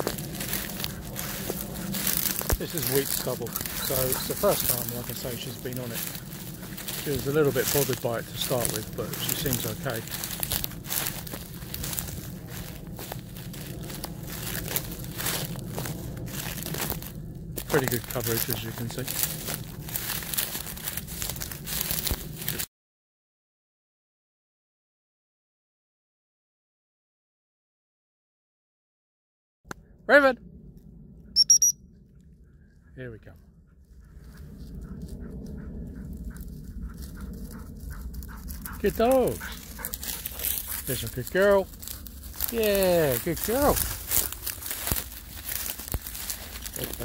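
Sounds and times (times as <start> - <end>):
stubble crunching underfoot: 0.0 - 22.6, 41.8 - 47.0
dog whistle pips: 31.4 - 31.8.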